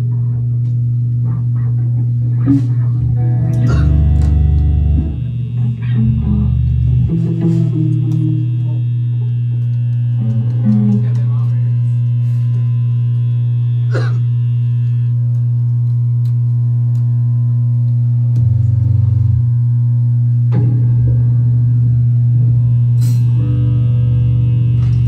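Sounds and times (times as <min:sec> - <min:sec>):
deep bass note: 0:00.0 - 0:25.0
electric guitars and bass drone: 0:00.0 - 0:25.0.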